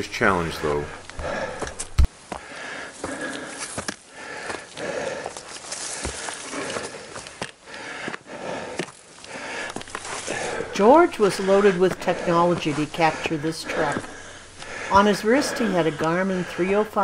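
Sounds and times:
footsteps on dirt trail: 0.4s - 16.8s
person breathing hard: 0.8s - 17.0s.

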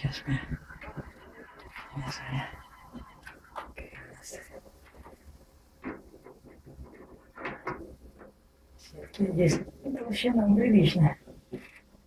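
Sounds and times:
hands rustling at work: 0.2s - 12.0s.

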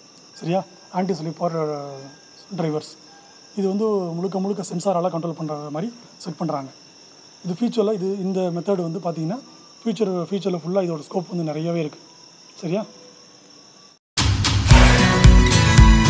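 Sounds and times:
man talking: 0.4s - 3.0s, 3.6s - 6.7s, 7.4s - 12.0s, 12.6s - 12.9s.

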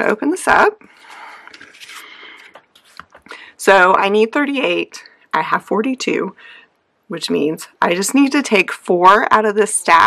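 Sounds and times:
paper and fabric rustling: 0.9s - 3.3s.

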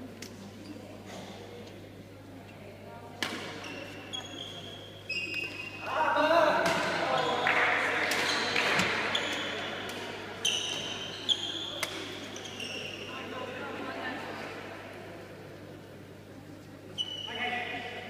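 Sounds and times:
racket hitting shuttlecock: 3.2s - 3.7s, 6.6s - 11.0s, 11.8s - 12.2s
shoes squeaking on court floor: 3.2s - 5.8s, 7.0s - 7.5s, 8.1s - 13.2s, 16.9s - 17.6s.

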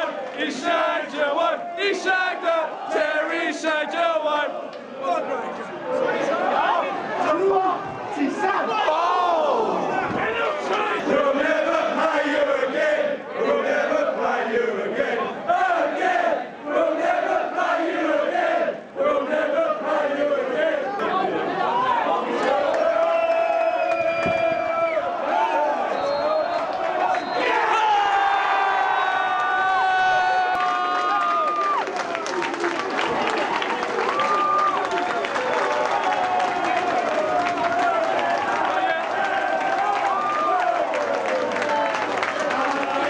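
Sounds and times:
crowd singing a chant: 0.0s - 5.2s, 10.1s - 23.1s.

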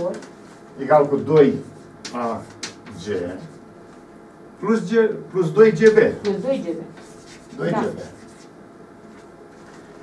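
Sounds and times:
chalk scratching on blackboard: 6.3s - 8.6s.

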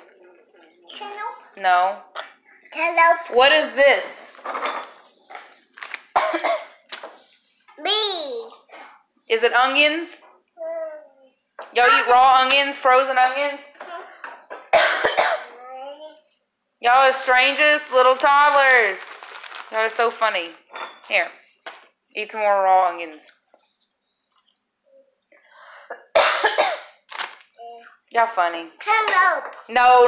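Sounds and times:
person coughing: 6.2s - 6.8s, 14.7s - 15.6s, 25.9s - 26.9s.

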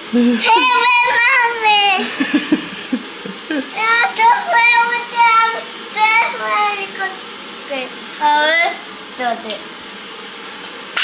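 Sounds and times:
small boy talking excitedly: 0.4s - 2.1s, 3.7s - 9.6s.

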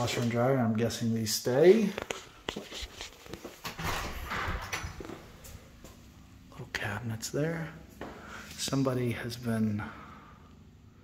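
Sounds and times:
door opening: 3.6s - 5.4s.

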